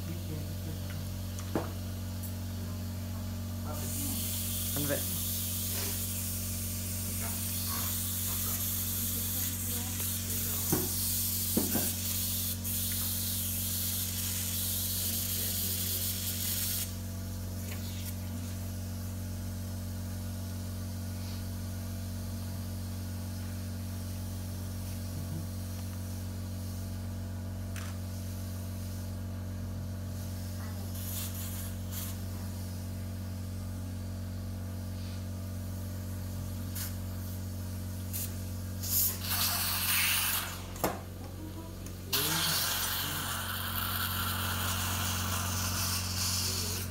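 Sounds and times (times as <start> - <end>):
low electrical hum: 0.0 - 46.9.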